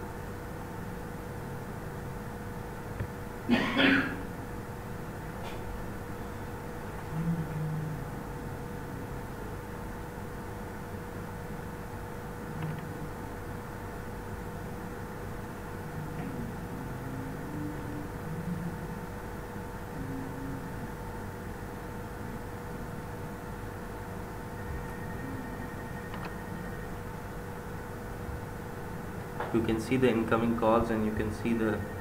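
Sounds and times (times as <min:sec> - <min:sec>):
background hum and hiss: 0:00.0 - 0:32.0
faint constant tone: 0:00.0 - 0:32.0.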